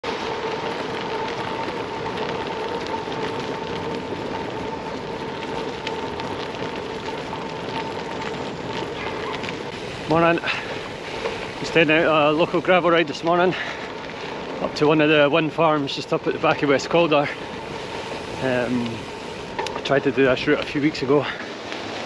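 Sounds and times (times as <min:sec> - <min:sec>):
bike tyres rolling over dry leaves: 0:00.0 - 0:22.0.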